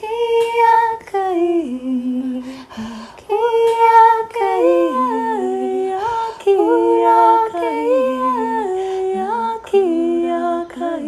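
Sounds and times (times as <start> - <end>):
woman singing wordlessly: 0.0 - 11.0
short breaths: 2.4 - 3.3.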